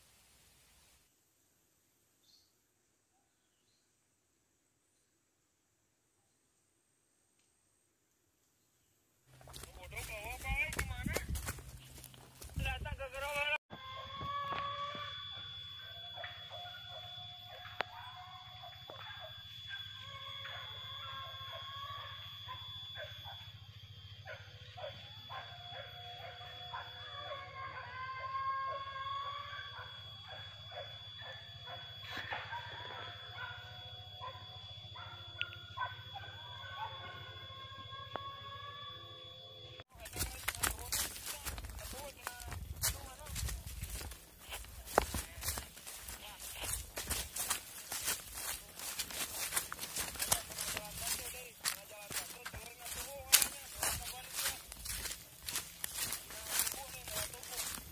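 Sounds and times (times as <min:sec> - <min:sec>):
rustling and footsteps in undergrowth: 0:09.2 - 0:13.6, 0:39.9 - 0:57.9
distant dogs baying and barking: 0:09.4 - 0:57.9
high-pitched insect drone: 0:13.7 - 0:57.9.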